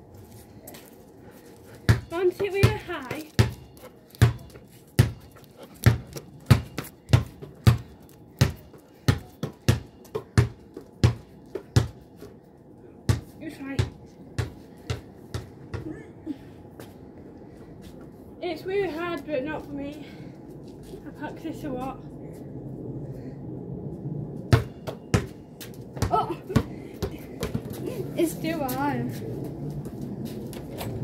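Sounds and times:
basketball bouncing on paving: 0:01.9 - 0:12.1, 0:13.1 - 0:16.0, 0:24.5 - 0:27.8.

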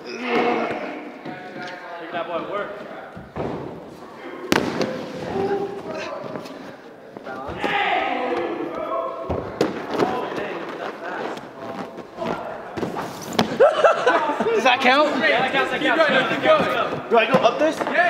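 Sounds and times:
people talking and calling out: 0:00.0 - 0:18.0.

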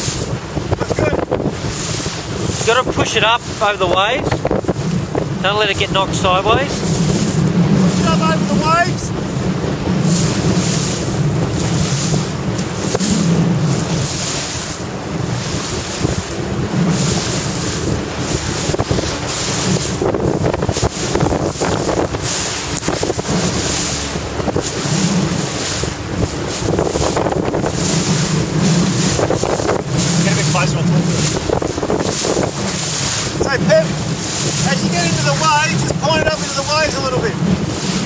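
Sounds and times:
rough water rushing and splashing: 0:00.0 - 0:38.0
wind buffeting microphone: 0:00.0 - 0:38.0.

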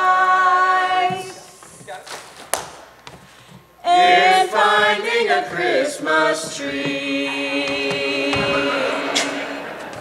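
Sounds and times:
men singing: 0:03.9 - 0:10.0
stage and audience noise: 0:06.6 - 0:10.0.

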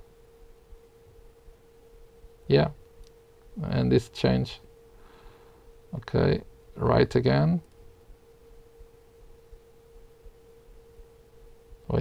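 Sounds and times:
faint electronic whine: 0:00.0 - 0:12.0
low room noise: 0:00.0 - 0:12.0.

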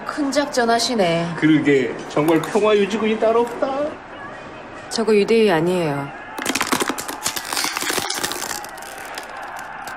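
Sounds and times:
plastic bottle crackling: 0:06.4 - 0:09.9.

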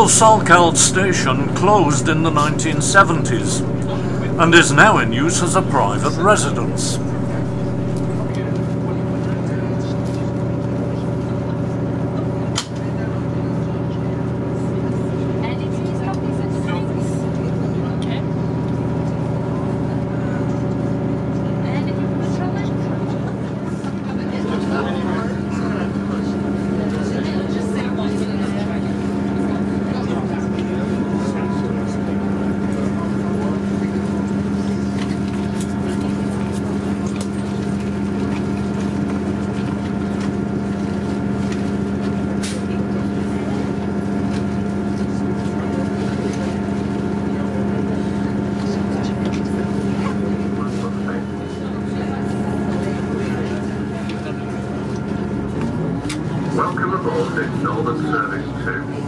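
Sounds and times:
train engine drone: 0:00.0 - 0:08.4.

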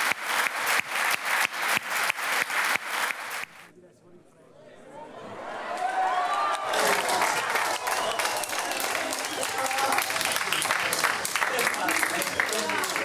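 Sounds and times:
crowd applauding: 0:00.0 - 0:03.7, 0:05.7 - 0:13.0
shouts and excited voices: 0:05.0 - 0:10.3.

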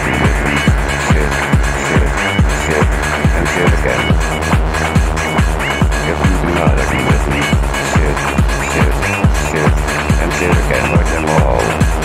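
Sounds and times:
dense synth chords: 0:00.0 - 0:12.0
heavy techno kick drum: 0:00.0 - 0:12.0.

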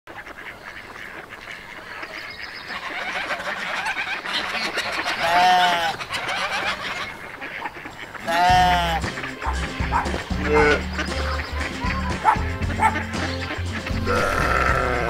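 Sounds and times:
loud honking call: 0:05.2 - 0:06.0, 0:08.2 - 0:15.0.

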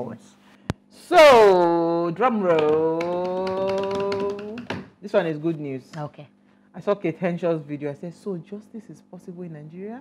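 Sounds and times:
taps on a desk: 0:02.4 - 0:05.0.

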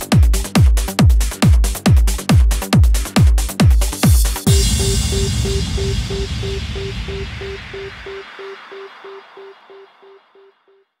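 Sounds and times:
short synth blip: 0:04.5 - 0:10.8.

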